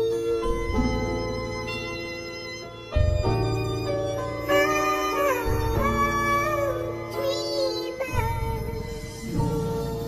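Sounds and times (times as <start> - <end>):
soft instrumental backing: 0.0 - 10.0
pitched-up voice singing a ballad: 4.4 - 10.0.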